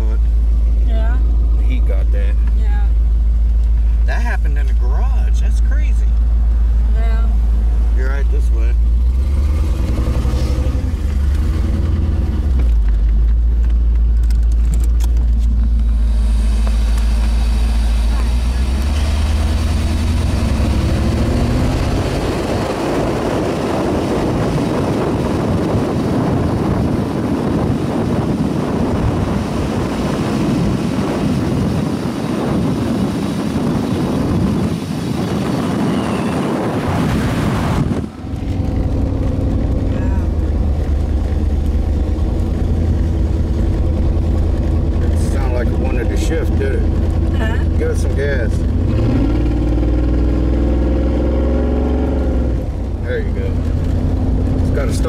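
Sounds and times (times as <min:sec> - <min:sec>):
car engine rising in pitch: 0:00.0 - 0:55.0
road and wind noise: 0:00.0 - 0:55.0.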